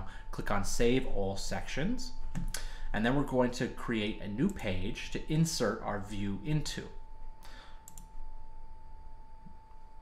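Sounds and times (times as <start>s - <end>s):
faint steady hum: 0.0s - 10.0s
computer mouse clicks: 7.8s - 8.1s.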